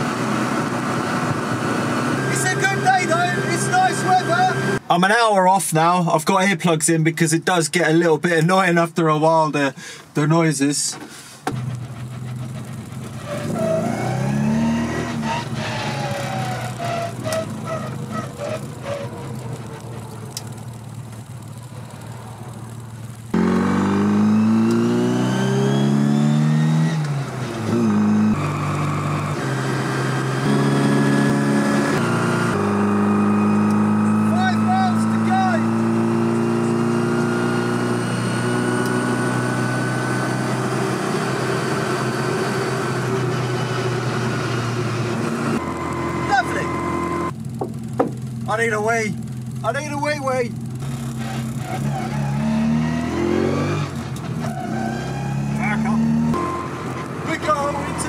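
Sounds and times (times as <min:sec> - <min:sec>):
car engine from inside cabin: 0:11.5 - 0:58.0.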